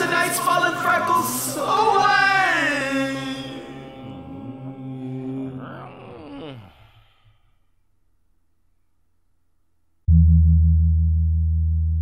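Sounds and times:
a cappella voices singing: 0.0s - 5.8s.

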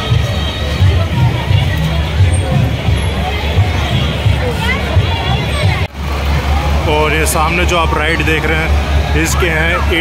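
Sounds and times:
low rumble of ride machinery: 0.0s - 10.0s.

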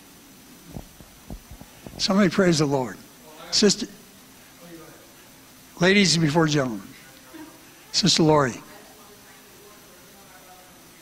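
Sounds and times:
microphone handling thumps: 0.7s - 2.7s.

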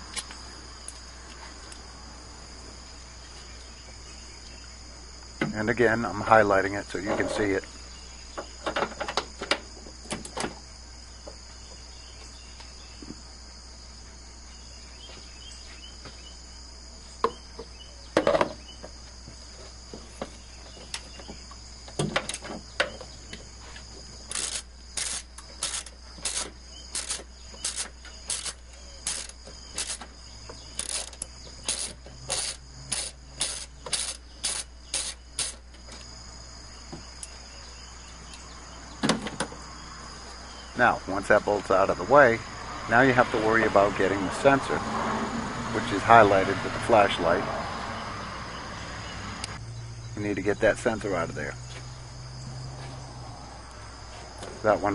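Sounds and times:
ratchet clicking: 24.3s - 30.0s, 30.7s - 35.6s.

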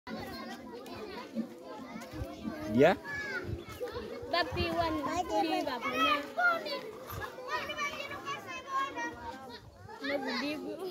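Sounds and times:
crowd of children talking: 0.1s - 10.9s.

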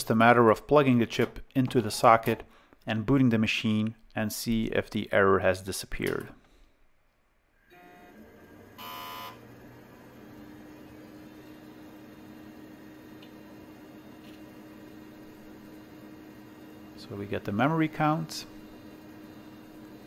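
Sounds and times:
steady hum with held tone: 7.4s - 20.0s
computer fans and drives whirring: 7.7s - 20.0s.

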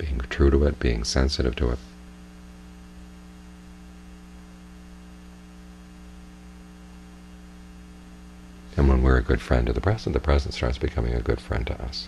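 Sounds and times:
electrical mains hum: 0.0s - 12.0s
faint hiss: 0.0s - 12.0s.

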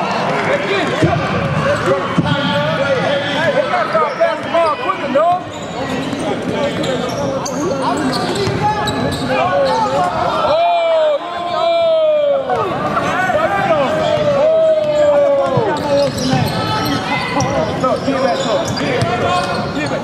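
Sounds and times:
people shouting and talking: 0.0s - 20.0s.

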